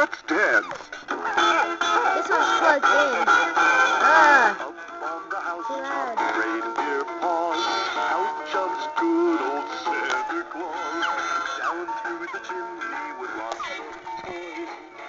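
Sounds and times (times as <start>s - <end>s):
man singing over backing tune: 4.0s - 14.9s.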